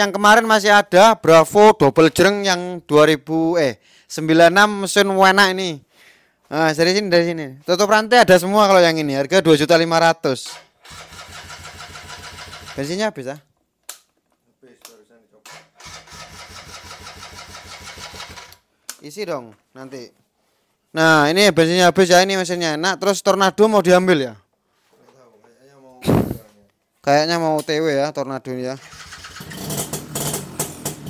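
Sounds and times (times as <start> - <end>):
motorcycle starter cranking: 10.4 - 12.9, 15.5 - 18.6, 28.8 - 31.0.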